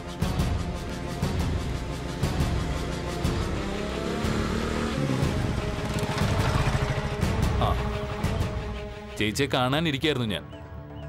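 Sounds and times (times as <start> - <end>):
background music: 0.0 - 11.0
motorcycle engine running: 0.4 - 8.2.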